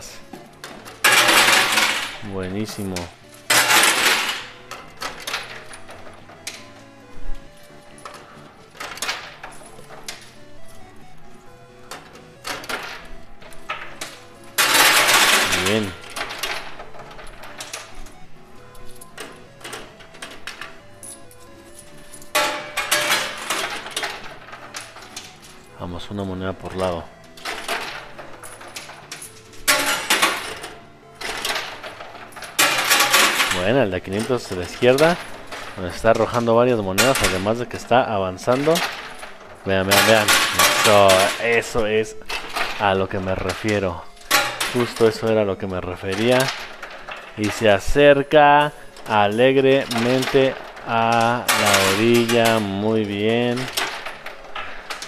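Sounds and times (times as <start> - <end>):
coins clinking and spilling: 0.0 - 55.0
music: 0.0 - 55.0.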